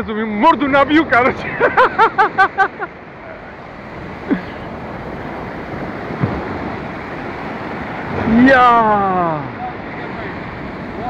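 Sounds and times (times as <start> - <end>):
surf breaking on beach: 0.4 - 11.0
man laughing: 1.4 - 3.0
wind on microphone: 2.6 - 11.0.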